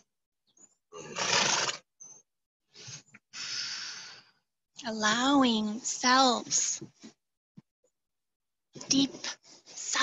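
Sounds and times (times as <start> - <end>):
horse snorting: 0.9 - 1.9.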